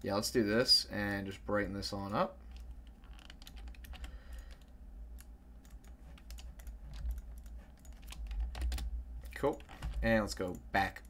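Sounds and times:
low steady hum: 0:00.0 - 0:11.0
computer keyboard typing: 0:02.5 - 0:10.6.

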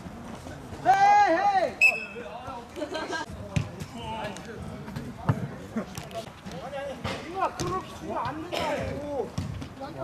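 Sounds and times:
ball being kicked: 0:09.4 - 0:09.7.

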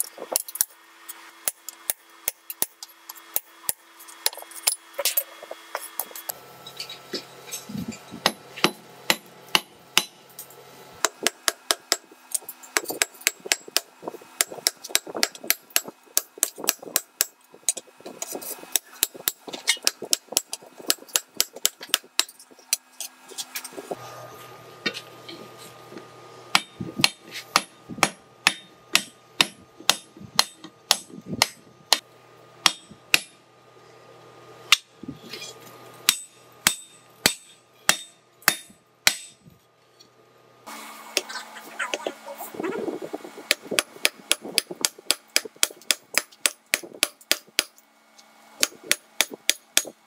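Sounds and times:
hammer striking steel on anvil: 0:08.2 - 0:10.4, 0:11.0 - 0:17.8, 0:26.5 - 0:32.0, 0:32.6 - 0:33.4, 0:34.7 - 0:35.0, 0:36.0 - 0:39.4, 0:43.5 - 0:47.8
hammer ringing on anvil: 0:32.6 - 0:33.4.

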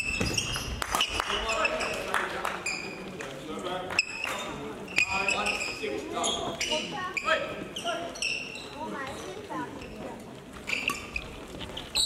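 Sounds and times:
shoes squeaking on floor: 0:00.0 - 0:03.2, 0:03.9 - 0:12.0
voices echoing in hall: 0:00.0 - 0:12.0.

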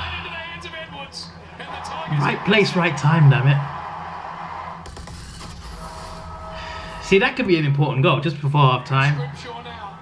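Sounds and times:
low broadcast background sound: 0:00.0 - 0:10.0.

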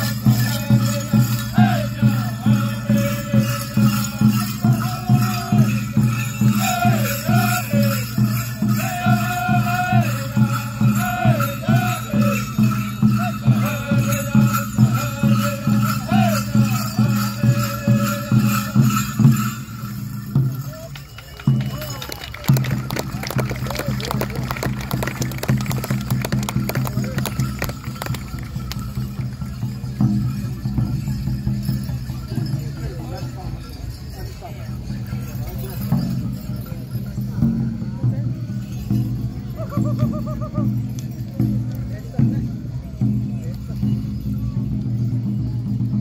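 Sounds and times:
men singing in low voices: 0:00.0 - 0:19.3
hand drums beating: 0:20.1 - 0:32.8.

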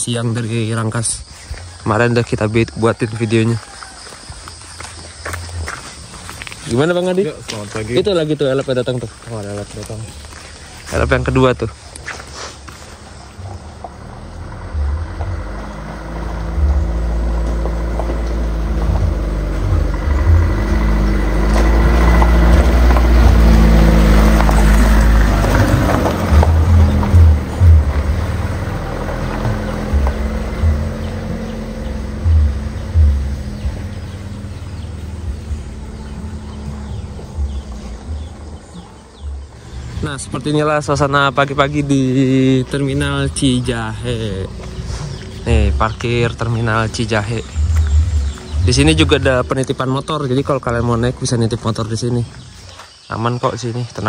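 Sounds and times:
minibus engine rumble: 0:00.0 - 0:54.0
low thumps: 0:13.5 - 0:40.3
low sustained background music: 0:14.1 - 0:53.5.

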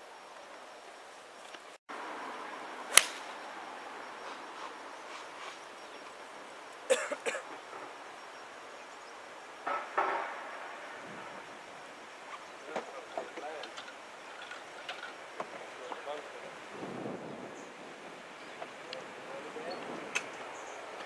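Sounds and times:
sharp clicks: 0:02.9 - 0:03.3.

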